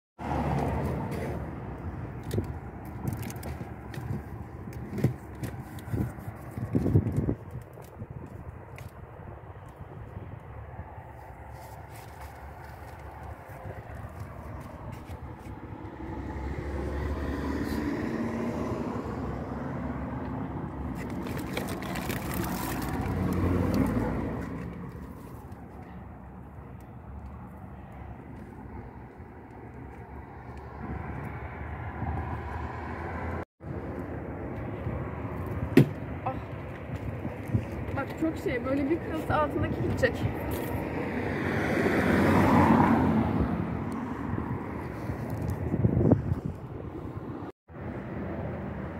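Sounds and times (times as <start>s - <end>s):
outdoor background noise: 0.2s - 48.9s.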